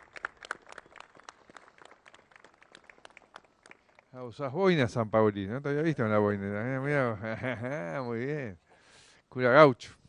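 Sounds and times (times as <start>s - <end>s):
people clapping: 0.0s - 4.6s.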